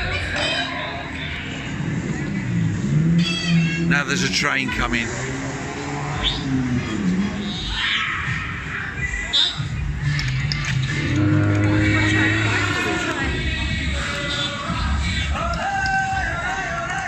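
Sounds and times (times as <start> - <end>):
chatter of passers-by: 0.0 - 17.0
fairground music: 0.0 - 17.0.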